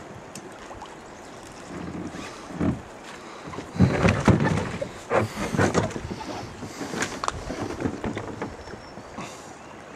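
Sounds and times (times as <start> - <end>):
moving water hiss: 0.0 - 9.9
water splashing around kayak: 0.0 - 9.9
wind on microphone: 1.6 - 9.1.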